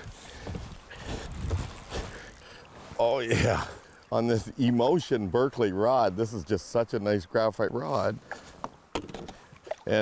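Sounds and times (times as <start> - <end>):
soft water splashes: 0.2 - 5.3, 9.3 - 10.0.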